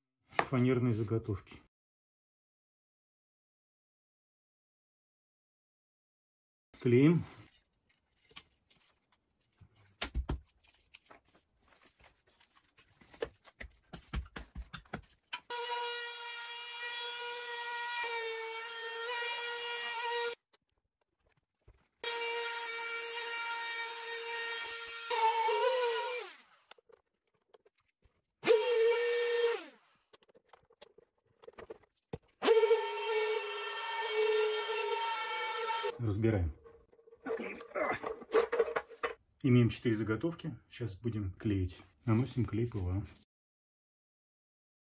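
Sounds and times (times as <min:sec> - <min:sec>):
router motor whine: 0:22.0 - 0:26.5, 0:28.4 - 0:29.9, 0:32.4 - 0:35.9.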